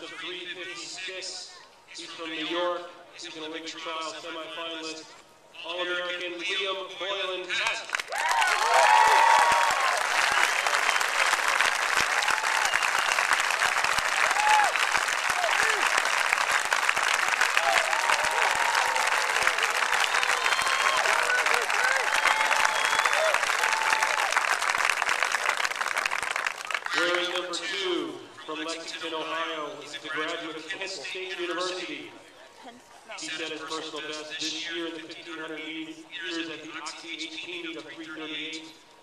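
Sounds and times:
crowd applauding and cheering: 7.9 - 27.4
shouts and whoops: 8.1 - 10.8, 14.1 - 15.9, 17.6 - 24.4.

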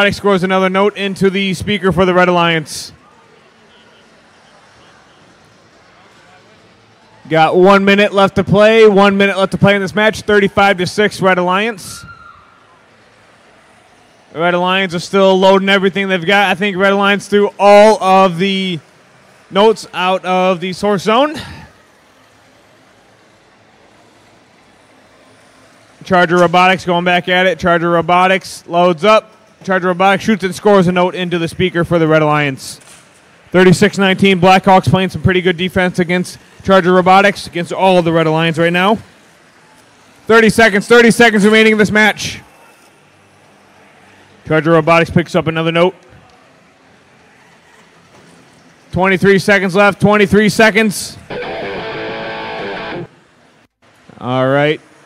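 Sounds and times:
man commentating: 0.0 - 3.0, 7.3 - 12.1, 14.4 - 18.9, 19.5 - 21.7, 33.6 - 39.0, 49.0 - 51.3
indoor arena background hiss: 0.0 - 55.0.

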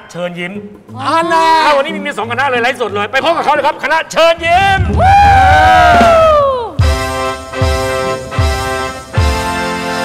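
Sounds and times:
keyboard chord and drum: 4.6 - 10.0
long high shout: 5.0 - 6.8.

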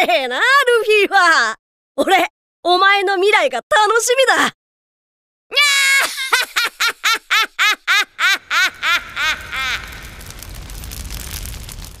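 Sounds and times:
high-pitched voice laughing: 5.6 - 10.1.

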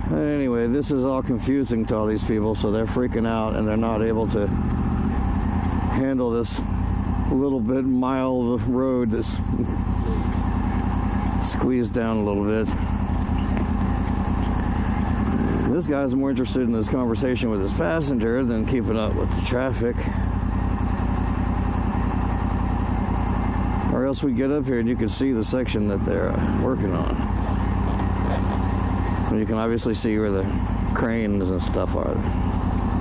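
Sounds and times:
motorcycle engine at low revs: 0.0 - 33.0
road and wind noise: 0.0 - 33.0.

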